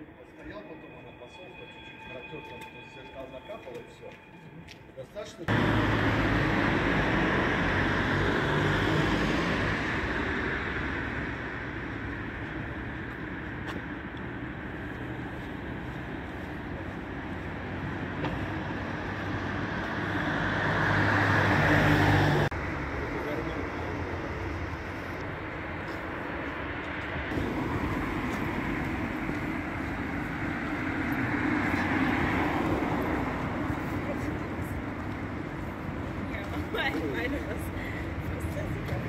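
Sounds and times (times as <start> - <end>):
cars passing on city street: 0.0 - 39.0.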